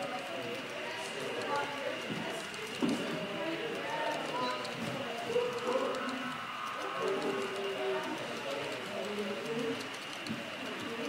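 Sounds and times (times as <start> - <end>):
indistinct conversation: 0.0 - 11.0
model train wheels clicking: 0.0 - 11.0.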